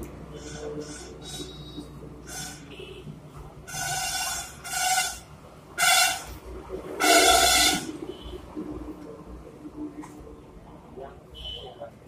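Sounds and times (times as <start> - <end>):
vehicle horn honking: 0.4 - 3.1, 3.7 - 6.3, 7.0 - 8.4, 11.4 - 11.8.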